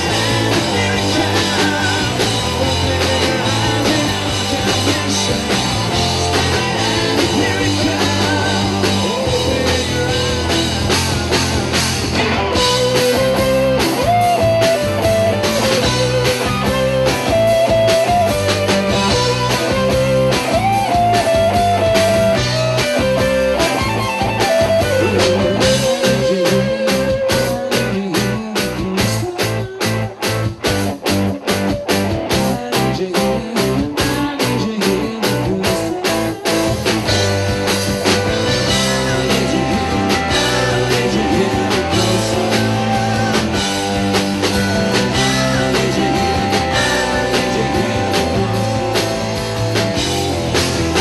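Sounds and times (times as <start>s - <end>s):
bass guitar: 0.0s - 51.0s
drums: 0.0s - 51.0s
electric guitar solo: 10.0s - 27.4s.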